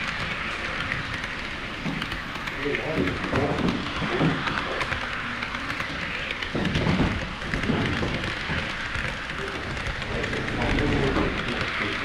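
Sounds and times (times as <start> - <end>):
model train wheels rattling: 0.0 - 12.0.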